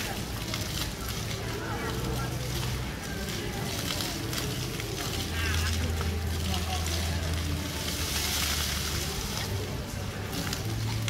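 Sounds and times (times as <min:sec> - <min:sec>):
fountain jets splashing on paving: 0:00.0 - 0:11.0.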